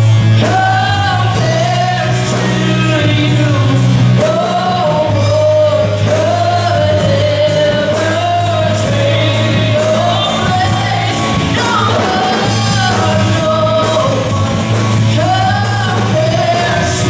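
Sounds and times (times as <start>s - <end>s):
rock band playing: 0.0s - 17.0s.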